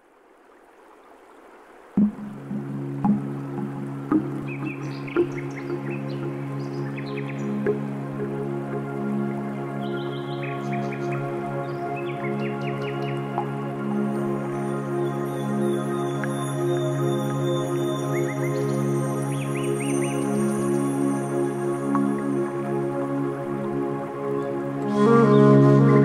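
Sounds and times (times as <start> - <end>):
low drone of held tones: 2.0 - 26.0.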